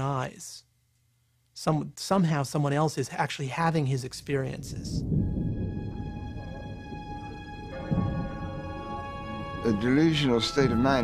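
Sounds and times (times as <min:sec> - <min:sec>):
low rumble: 0:04.1 - 0:09.9
eerie ambient music: 0:05.0 - 0:11.0
sustained high tones: 0:05.1 - 0:11.0.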